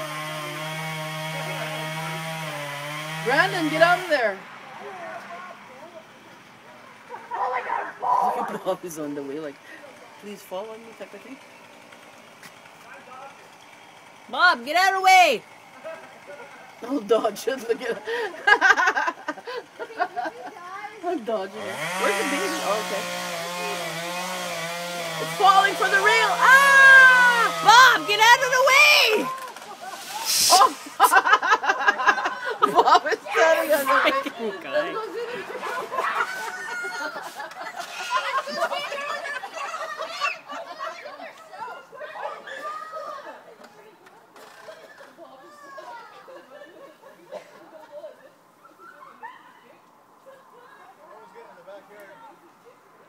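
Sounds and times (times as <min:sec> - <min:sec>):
distant voices calling out: 0:03.0 - 0:08.8, 0:20.9 - 0:31.0
people screaming: 0:25.6 - 0:31.1, 0:35.5 - 0:40.6.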